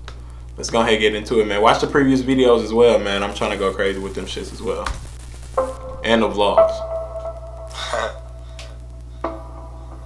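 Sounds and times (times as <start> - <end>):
steady low hum: 0.0 - 10.0
soft held synth notes: 3.0 - 10.0.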